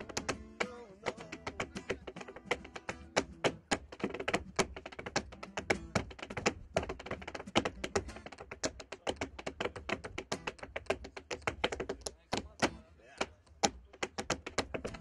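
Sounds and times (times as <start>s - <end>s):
tap shoes tapping on board: 0.0s - 15.0s.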